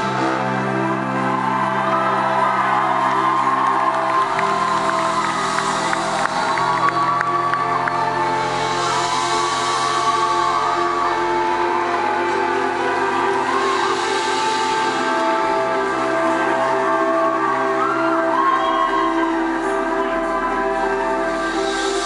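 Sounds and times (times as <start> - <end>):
audience whooping: 0.0 - 22.0
band playing slow held chords: 0.0 - 22.0.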